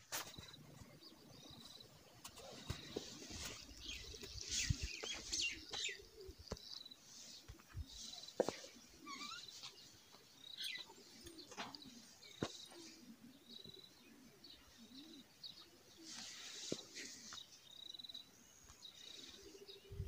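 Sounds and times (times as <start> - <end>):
birds chirping: 0.0 - 20.0
high bird trill: 9.0 - 9.8.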